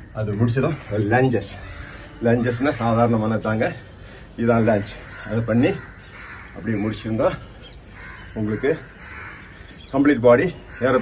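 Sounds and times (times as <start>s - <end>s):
crows cawing: 0.0s - 11.0s
man speaking: 2.2s - 5.8s, 9.9s - 11.0s.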